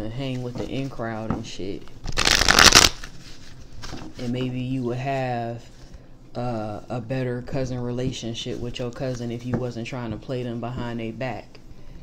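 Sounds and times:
cards being shuffled: 0:02.0 - 0:04.5
handling deck of cards: 0:02.0 - 0:04.6.

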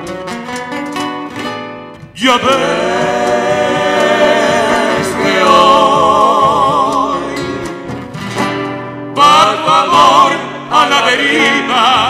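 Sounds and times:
acoustic guitar notes: 0:00.0 - 0:12.0
male vocal trio singing in harmony: 0:02.2 - 0:08.0, 0:09.1 - 0:12.0.

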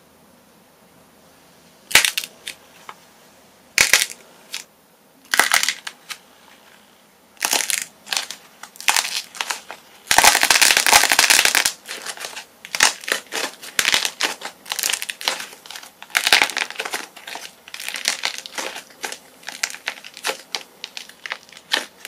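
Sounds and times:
clay cracking and crunching: 0:01.9 - 0:02.6, 0:03.8 - 0:04.7, 0:05.3 - 0:06.2, 0:07.4 - 0:22.0.

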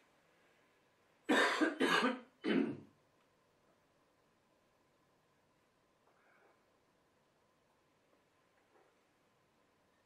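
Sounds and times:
man coughing: 0:01.3 - 0:02.9.

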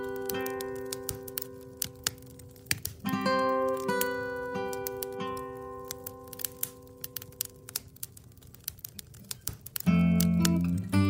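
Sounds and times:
wood fire crackling: 0:00.0 - 0:11.0.

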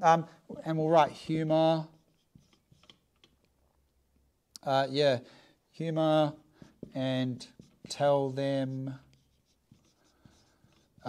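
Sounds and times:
marker scratching on whiteboard: 0:01.0 - 0:03.3, 0:06.4 - 0:11.0.

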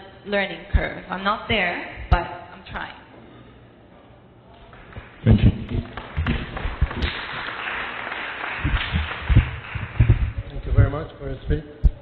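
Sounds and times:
audience applauding: 0:04.7 - 0:10.5
low thumps: 0:08.6 - 0:10.9.

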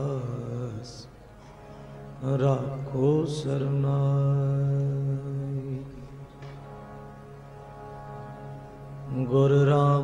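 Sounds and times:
harmonium: 0:00.0 - 0:10.0.

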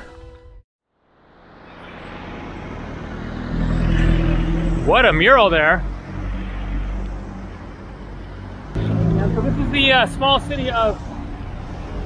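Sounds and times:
road rumble: 0:00.9 - 0:12.0.

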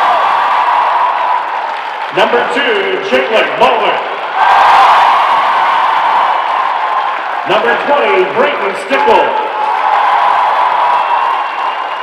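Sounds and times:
crowd cheering and applauding: 0:00.0 - 0:12.0.

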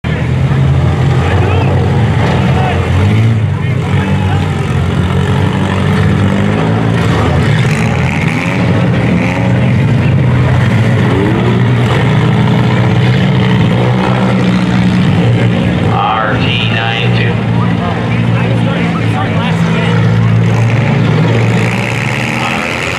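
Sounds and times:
car engines revving: 0:00.0 - 0:22.9.

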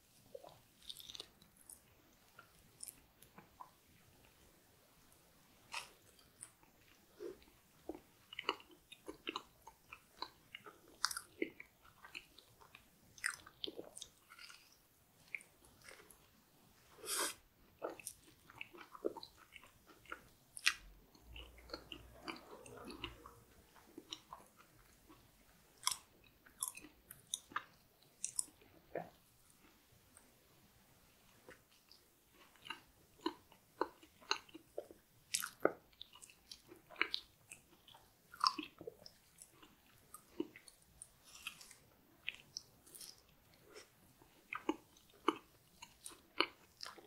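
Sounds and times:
close chewing and mouth sounds: 0:00.0 - 0:47.0.

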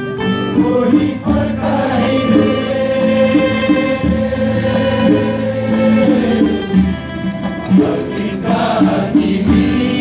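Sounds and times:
live instruments: 0:00.0 - 0:10.0
crowd singing in unison: 0:00.4 - 0:10.0.

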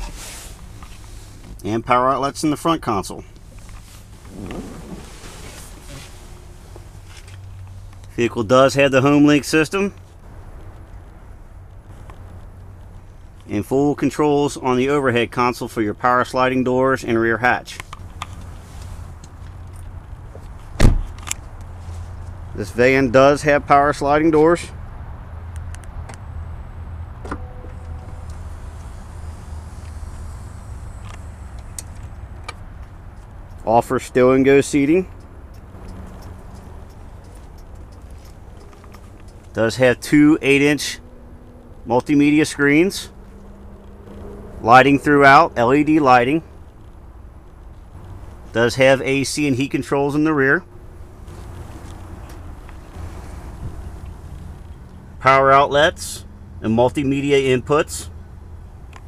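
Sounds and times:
faint clicks and rustles: 0:00.0 - 0:01.7, 0:03.2 - 0:08.2, 0:09.9 - 0:13.5, 0:35.0 - 0:39.6, 0:43.1 - 0:44.6, 0:50.7 - 0:55.0
low rumble with faint hiss: 0:00.0 - 0:59.0
sliding door motor hum: 0:03.8 - 0:07.3
brief electronic tone: 0:27.3 - 0:28.3.

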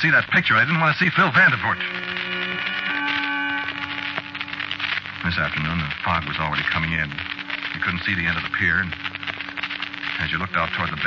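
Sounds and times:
sustained organ chord: 0:01.8 - 0:04.6.

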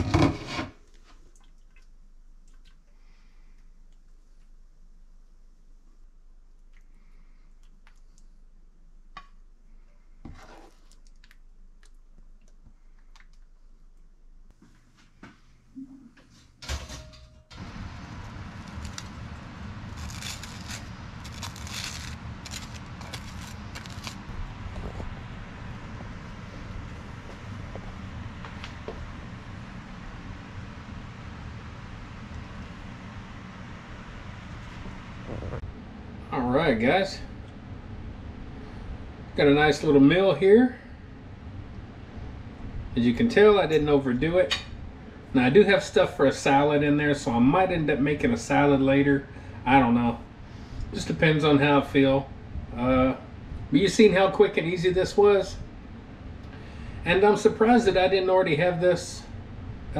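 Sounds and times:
steady background hum: 0:00.0 - 0:59.9.

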